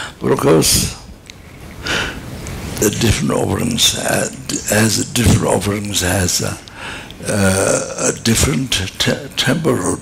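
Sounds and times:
man speaking: 0.2 - 1.1, 2.8 - 10.0.

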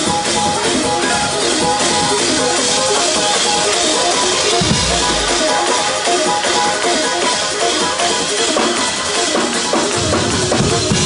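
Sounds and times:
drum kit with cymbals: 0.0 - 11.0
keyboard playing quick notes: 2.4 - 7.2
deep bass note: 4.6 - 5.7.

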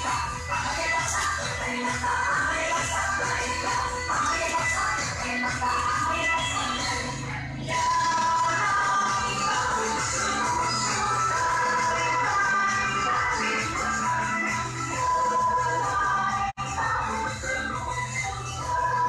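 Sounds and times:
latin dance music with percussion: 0.0 - 19.0.

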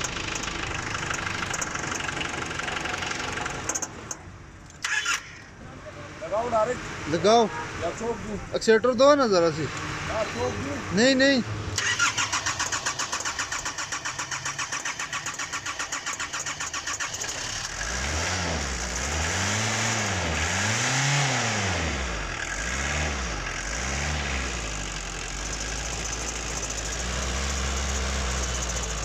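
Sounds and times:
starter cranking engine: 0.0 - 5.4, 11.8 - 18.1, 24.6 - 29.0
diesel engine revving and idling: 0.0 - 29.0.

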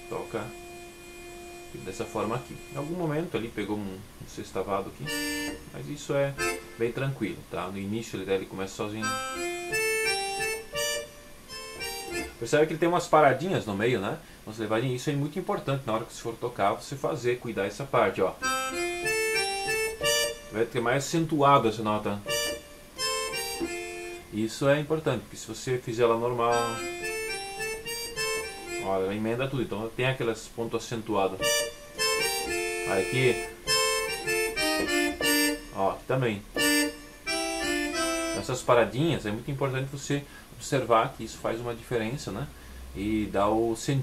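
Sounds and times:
keyboard accordion melody: 0.0 - 7.2, 8.7 - 13.4, 18.4 - 25.1, 25.9 - 29.9, 31.1 - 40.0.

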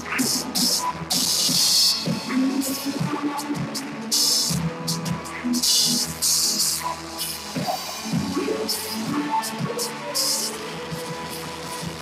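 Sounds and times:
live band with singers: 0.0 - 12.0.

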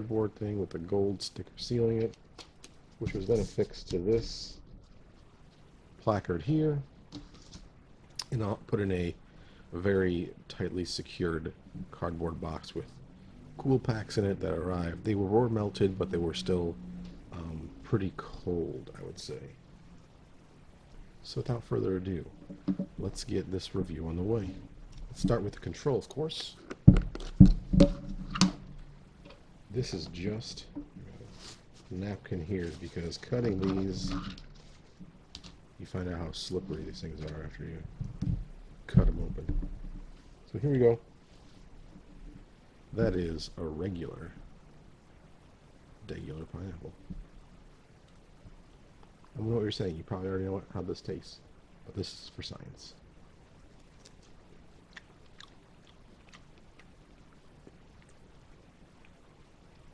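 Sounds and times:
handling noise: 22.2 - 23.4, 24.2 - 35.7
person chewing fruit: 53.8 - 58.3.

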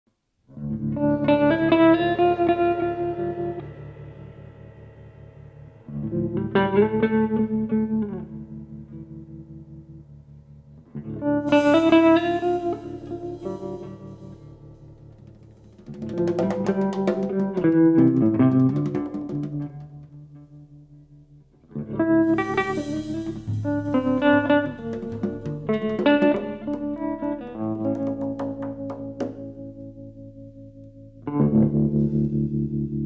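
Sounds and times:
cymbal wash: 2.2 - 7.2, 11.5 - 15.8, 22.2 - 25.8
jazz trio playing slow tune: 11.3 - 15.3, 22.0 - 27.9.

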